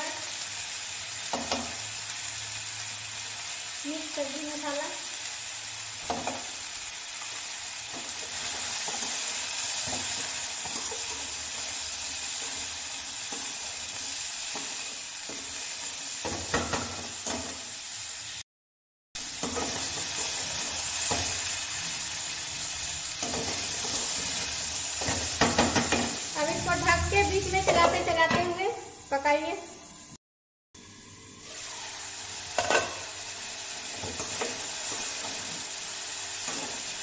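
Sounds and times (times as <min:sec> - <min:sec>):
vegetables sizzling in oil: 0:00.0 - 0:18.4, 0:19.2 - 0:30.2, 0:30.8 - 0:37.0.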